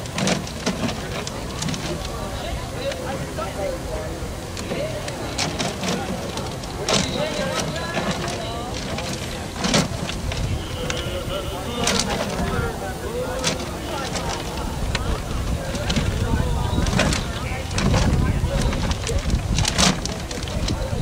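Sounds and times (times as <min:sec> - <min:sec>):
raffle drum knocking: 0:00.0 - 0:03.2, 0:04.5 - 0:21.0
paper tickets tumbling in drum: 0:00.0 - 0:21.0.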